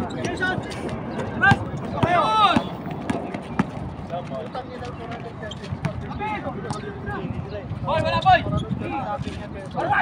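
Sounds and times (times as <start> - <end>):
faint voices calling: 0.0 - 10.0.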